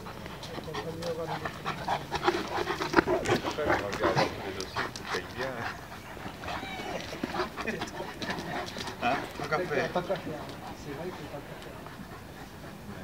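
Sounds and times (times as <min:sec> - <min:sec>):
dogs panting and vocalising: 0:00.0 - 0:13.0.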